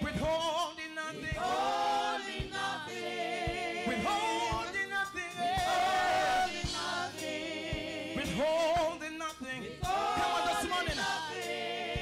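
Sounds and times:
group singing gospel in harmony: 0.0 - 12.0
low beat: 1.2 - 12.0.

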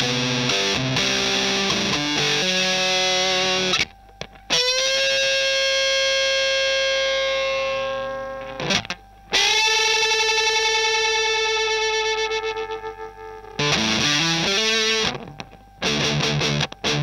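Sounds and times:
fuzzed electric guitar notes: 0.0 - 17.0.

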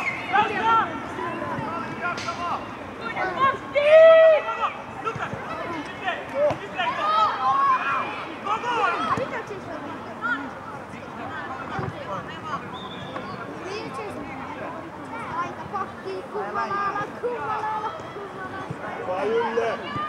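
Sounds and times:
voices shouting and calling: 0.0 - 20.0.

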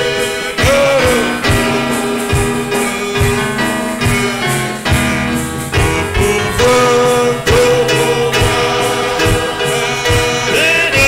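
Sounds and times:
group singing gospel song: 0.0 - 11.0
low beat: 0.0 - 11.0.

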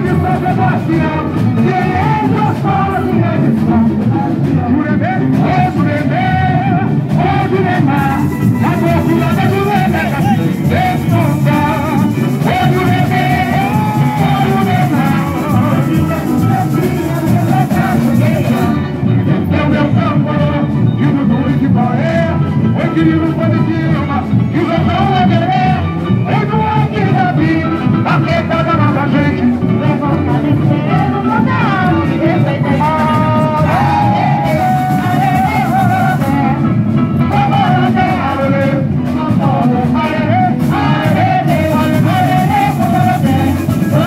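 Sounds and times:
person singing: 0.0 - 44.0
samba drum section: 0.0 - 44.0.

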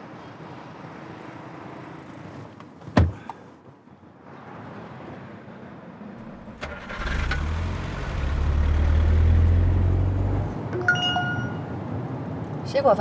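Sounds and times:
car engine starting and running: 6.2 - 11.7.

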